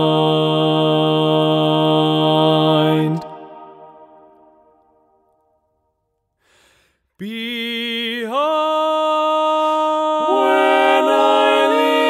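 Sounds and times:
a cappella chord sung: 0.0s - 4.8s, 7.6s - 12.0s
singer breathing in: 6.4s - 7.2s.

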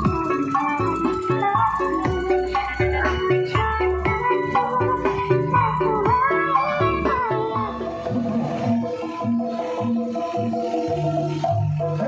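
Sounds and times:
loud music over speakers: 0.0s - 12.0s.

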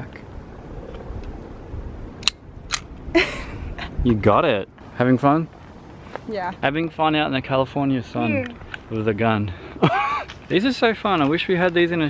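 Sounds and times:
pistol cocking clicks: 2.2s - 2.9s
person laughing: 3.1s - 4.1s, 9.8s - 10.4s.

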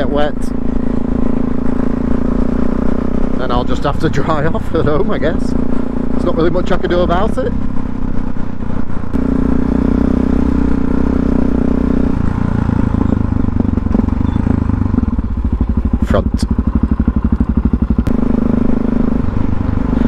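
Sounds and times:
motorcycle engine: 0.0s - 20.0s.

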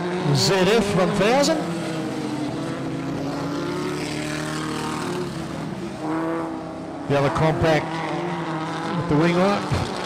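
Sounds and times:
racing car engines: 0.0s - 10.0s.

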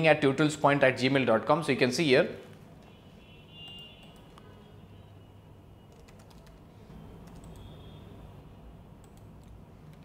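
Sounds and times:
keyboard typing: 5.9s - 7.8s, 9.0s - 10.0s.

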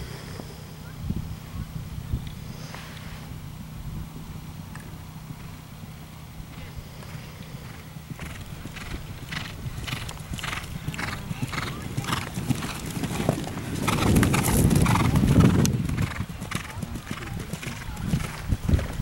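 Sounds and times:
horse hoofbeats: 6.5s - 19.0s.

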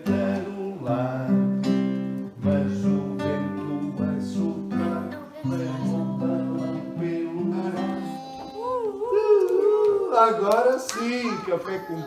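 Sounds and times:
acoustic guitar strumming: 0.0s - 8.4s
person singing: 0.0s - 10.2s.

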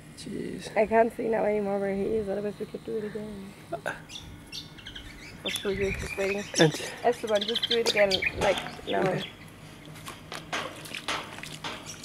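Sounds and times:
stick splashing pond water: 10.1s - 12.0s.

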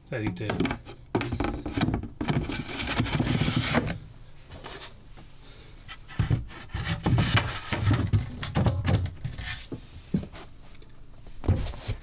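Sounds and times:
wooden panels scraping: 0.2s - 5.0s, 5.9s - 10.5s.

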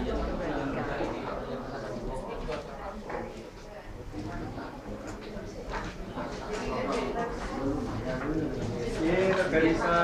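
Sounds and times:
murmur of overlapping voices: 0.0s - 10.0s.

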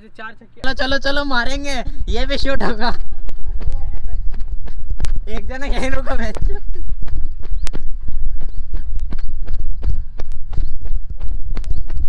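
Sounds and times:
quick footsteps on dry ground: 0.6s - 12.0s
wind buffeting microphone: 0.6s - 12.0s.

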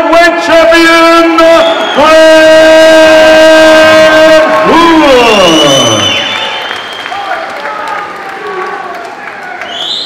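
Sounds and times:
announcer calling out drawn-out: 0.0s - 6.0s
crowd applauding: 3.1s - 10.0s.

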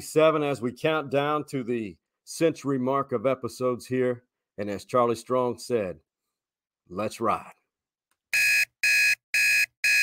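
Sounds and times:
high-pitched alarm beeps: 8.4s - 10.0s.

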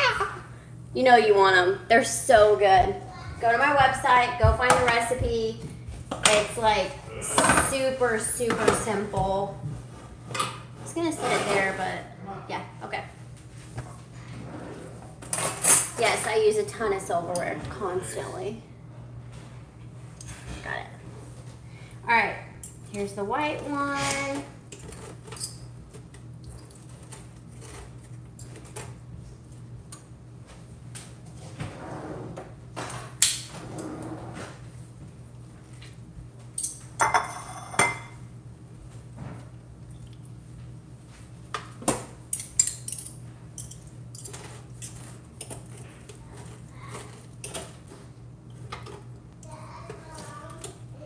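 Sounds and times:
steady low hum: 0.0s - 51.0s
metal utensils scraping tray and plate: 10.0s - 12.0s, 23.7s - 25.6s.

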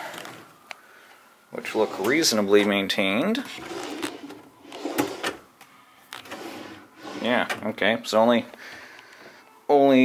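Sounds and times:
drawer sliding: 1.6s - 2.8s, 3.4s - 5.4s, 6.2s - 7.8s.

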